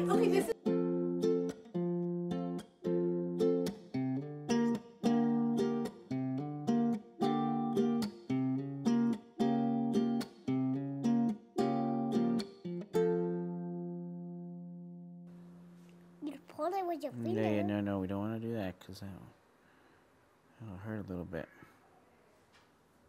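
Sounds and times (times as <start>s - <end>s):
guitar strumming chords: 0.0s - 16.2s, 17.2s - 17.7s.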